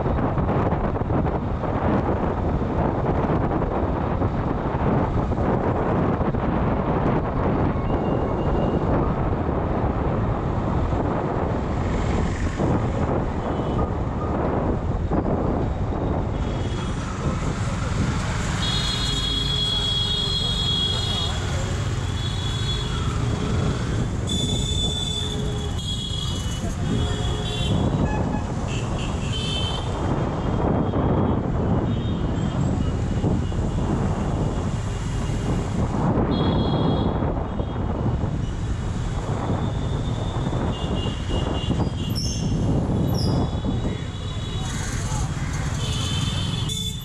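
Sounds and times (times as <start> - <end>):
motorcycle engine and road rumble: 0.0 - 47.0
wind on microphone: 0.0 - 47.0
vehicle horns honking: 18.6 - 21.5, 24.2 - 30.0, 36.3 - 37.2, 40.6 - 42.2, 45.8 - 47.0.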